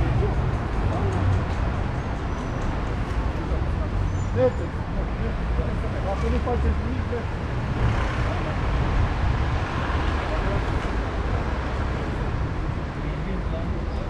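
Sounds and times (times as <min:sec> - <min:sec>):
cars passing on street: 0:00.0 - 0:14.0
faint voices talking: 0:00.0 - 0:14.0.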